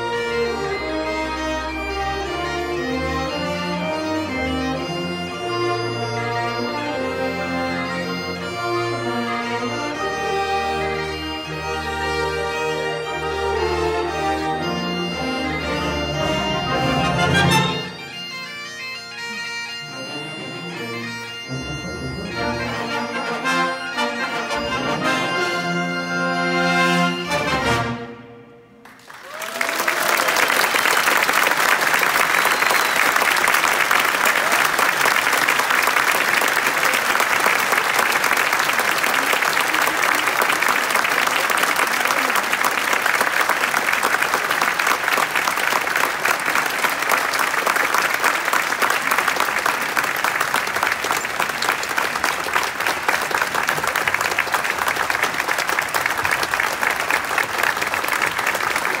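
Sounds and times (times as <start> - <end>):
audience applauding: 28.8 - 59.0.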